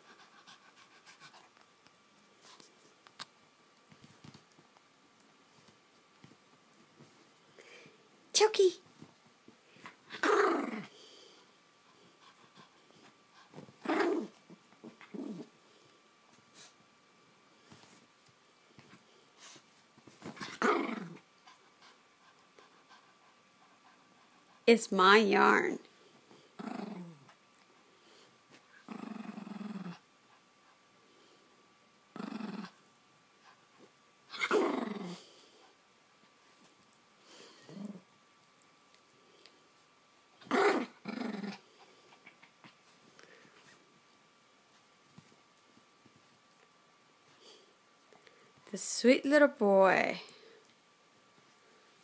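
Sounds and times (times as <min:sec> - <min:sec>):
small dog growling: 0:09.8 - 0:11.4, 0:13.5 - 0:15.5, 0:20.3 - 0:21.6, 0:26.3 - 0:27.4, 0:28.7 - 0:30.1, 0:32.1 - 0:32.8, 0:34.3 - 0:35.7, 0:37.4 - 0:38.1, 0:40.4 - 0:42.8.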